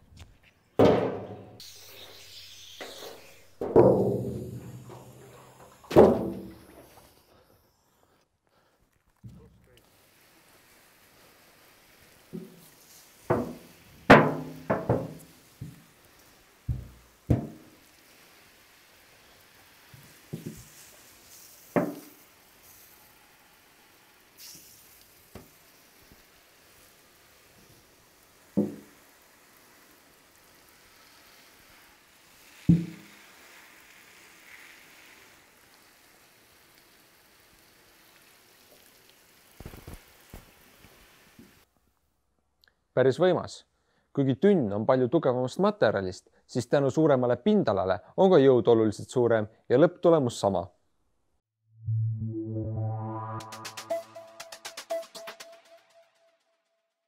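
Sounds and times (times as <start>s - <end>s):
steel drum banging and crumpling: 0.8s - 1.7s, 3.5s - 6.9s, 12.4s - 15.8s
faint hiss of water spray: 1.6s - 41.7s.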